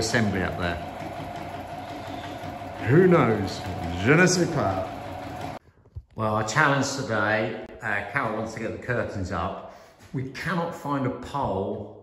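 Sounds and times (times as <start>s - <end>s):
sewing machine running: 0.0s - 5.6s.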